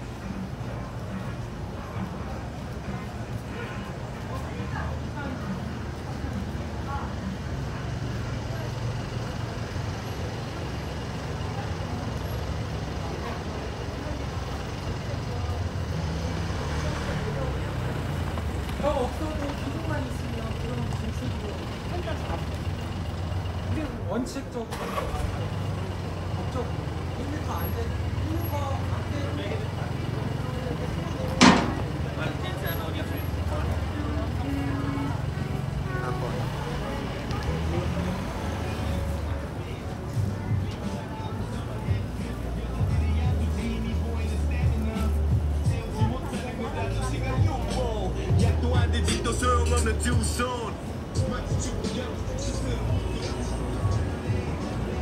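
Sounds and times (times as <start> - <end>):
low traffic rumble: 0.0 - 55.0
passers-by talking: 0.0 - 55.0
sharp knock: 31.4 - 31.8.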